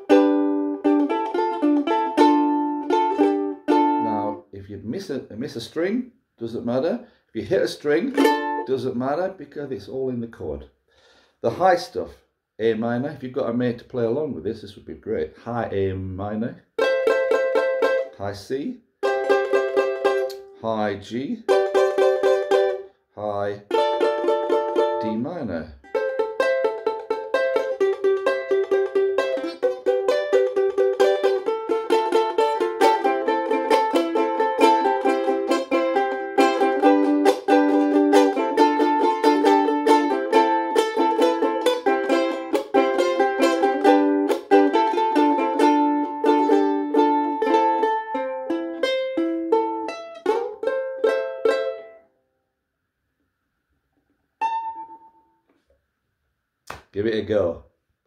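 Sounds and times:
ukulele strumming chords: 0.0s - 4.5s, 7.6s - 9.0s, 16.8s - 18.2s, 19.0s - 22.9s, 23.6s - 52.0s, 54.4s - 55.3s.

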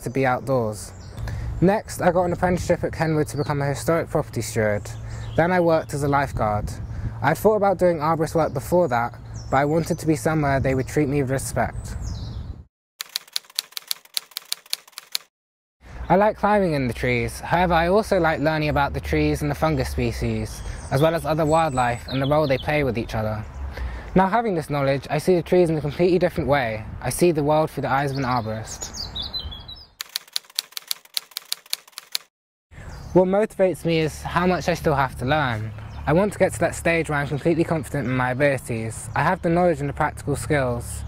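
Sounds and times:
typewriter key clacks: 13.0s - 15.3s, 30.0s - 32.3s.

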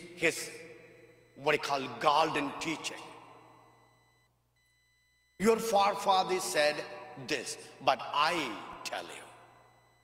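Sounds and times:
speech reverberating in church: 0.0s - 3.8s, 5.4s - 9.7s
faint high-pitched electronic tones: 0.0s - 7.8s, 8.4s - 10.0s.

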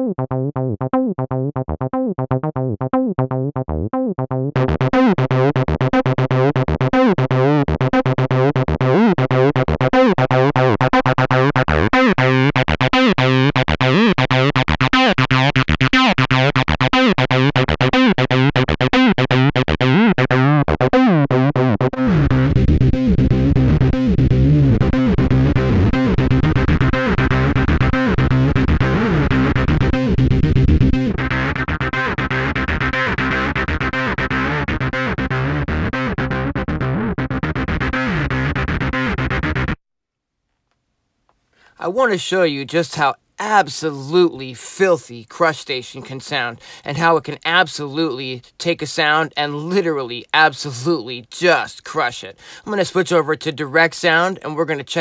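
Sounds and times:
distorted acid bass synth: 0.0s - 39.8s.

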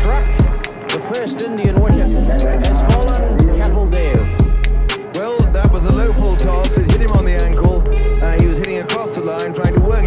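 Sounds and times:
music with drum beat and bass: 0.0s - 10.0s.

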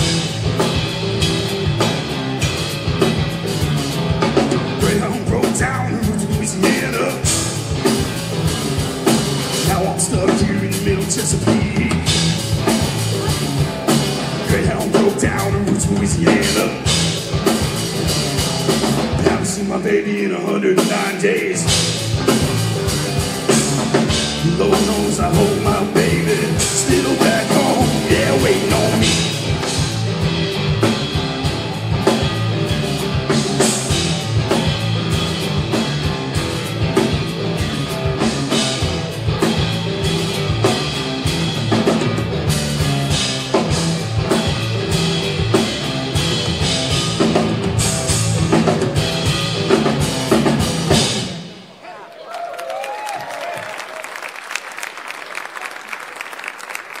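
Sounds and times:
live rock band playing: 0.0s - 51.8s
audience applause and cheering: 24.8s - 36.2s, 51.5s - 57.0s.

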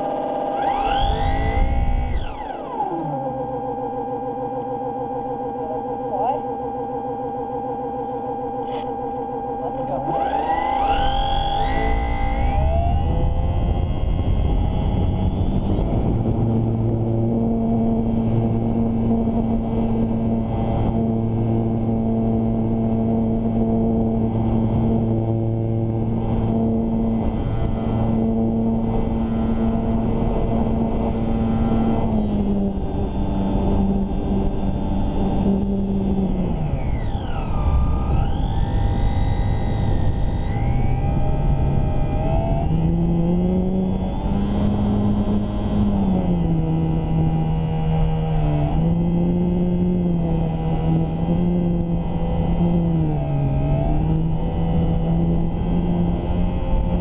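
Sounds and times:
electric motor and propeller whine: 0.0s - 57.0s.

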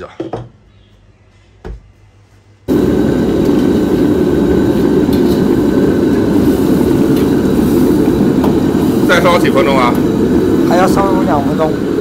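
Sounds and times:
broth boiling: 2.7s - 12.0s
gas burner roaring: 2.7s - 12.0s.

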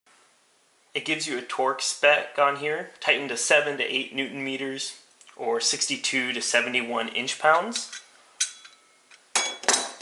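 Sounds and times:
metal tools clinking on stone: 7.5s - 10.0s.

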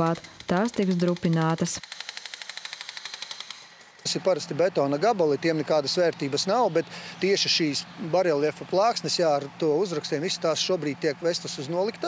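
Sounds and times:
hydraulic breaker hammer pounding: 0.0s - 4.1s.

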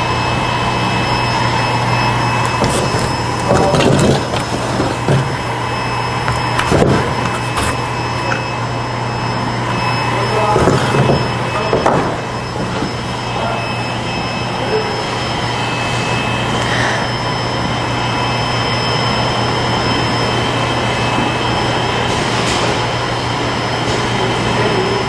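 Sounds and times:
high machine whine: 0.0s - 25.0s
machine hum and hiss: 0.0s - 25.0s.

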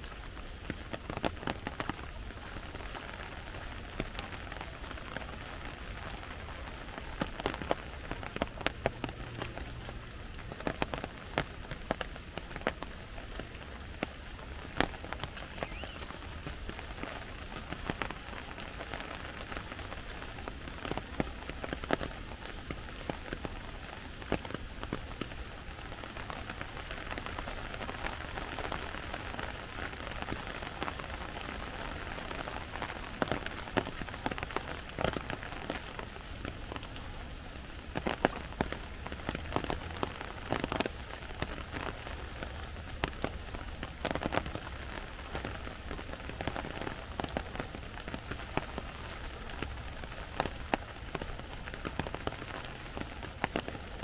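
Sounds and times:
steady rain: 0.0s - 54.0s.

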